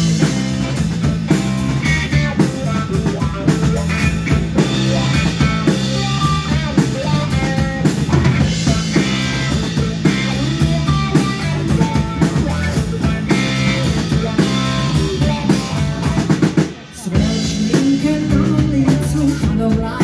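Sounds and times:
live band playing: 0.0 - 20.0.

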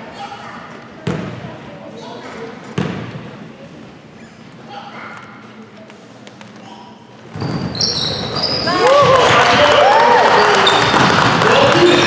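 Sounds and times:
basketball bouncing on gym floor: 1.0 - 1.5, 2.8 - 3.2, 10.8 - 12.0.

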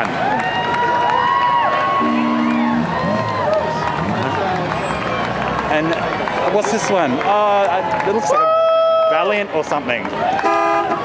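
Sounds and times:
parade crowd: 0.0 - 11.0
low two-note horn tone: 2.0 - 2.9.

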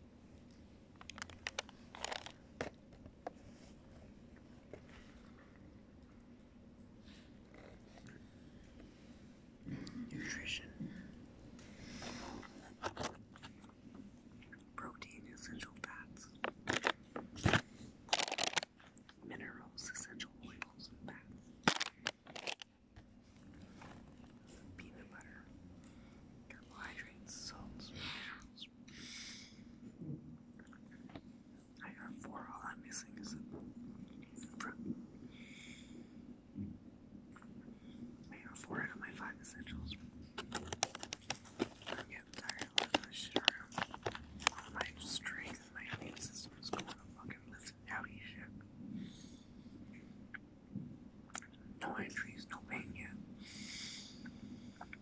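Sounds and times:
steady low hum: 0.0 - 55.0
man whispering: 9.7 - 11.1, 14.5 - 16.3, 19.2 - 21.3, 24.5 - 25.5, 26.5 - 28.8, 31.8 - 33.7, 34.4 - 35.0, 38.3 - 40.1, 41.9 - 48.6, 51.8 - 53.2.

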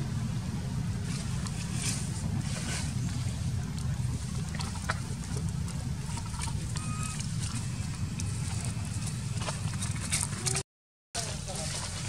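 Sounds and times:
steady low rumble: 0.0 - 10.6.

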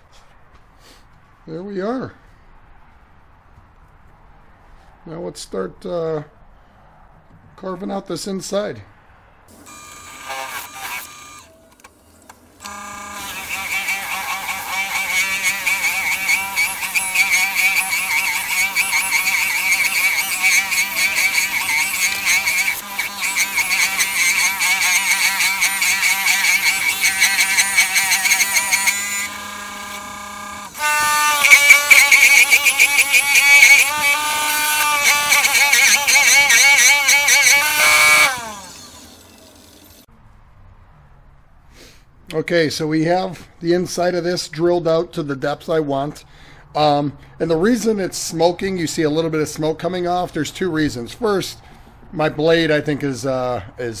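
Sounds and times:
wood lathe running: 9.5 - 11.5, 12.6 - 40.1
drill bit screeching in wood: 9.6 - 11.5, 12.6 - 40.0.

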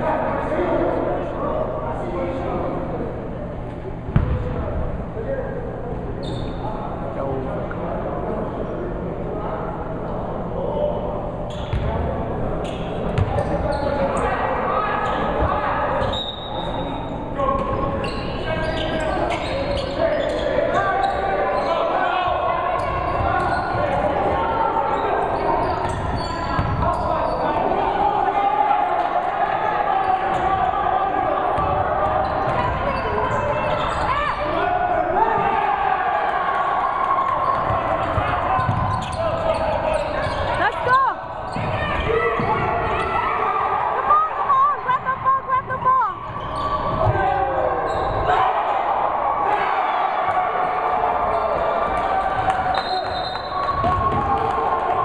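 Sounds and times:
overlapping chatter of crowd: 0.0 - 55.0
basketball bouncing on hardwood floor: 4.2 - 4.5.

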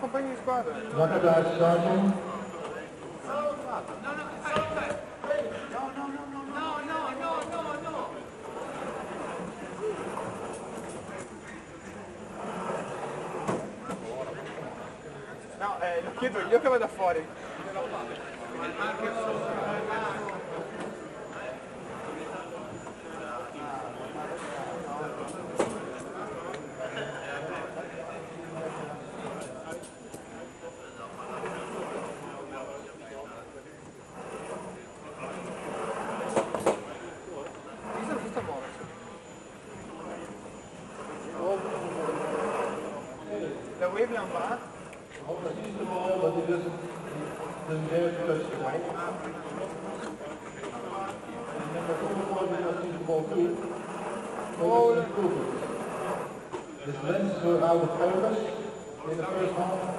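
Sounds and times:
indistinct chatter of people: 0.0 - 59.9
murmur of many voices: 0.0 - 59.9
steady rumble in a large hall: 0.0 - 59.9.

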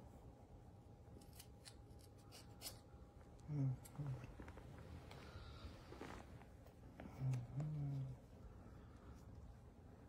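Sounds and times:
scissors snipping hair: 1.2 - 2.8
person humming: 3.4 - 4.4, 7.0 - 8.2.

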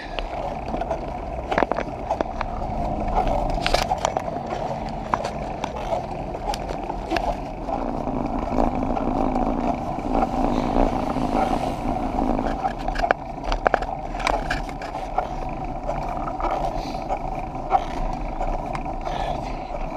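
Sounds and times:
bicycle tyre rumble on road: 0.0 - 19.9
rattling clicks of bicycle: 0.0 - 19.9.

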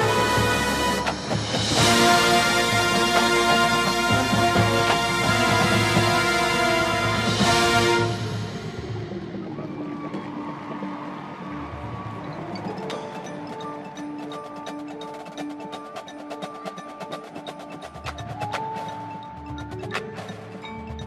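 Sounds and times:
marching band held notes: 0.0 - 20.6.

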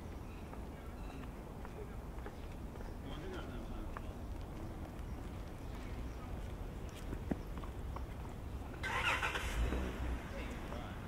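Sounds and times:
motor vehicle on street: 0.0 - 11.0.

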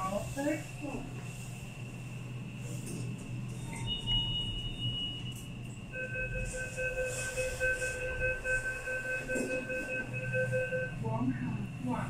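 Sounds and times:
lift car low hum: 0.0 - 12.0
high-pitched electronic tone: 6.0 - 11.0.

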